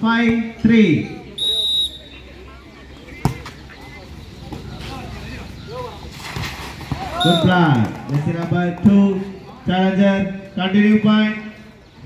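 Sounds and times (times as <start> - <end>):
faint voices: 0.6 - 12.0
referee's whistle: 1.4 - 2.3, 7.1 - 7.7.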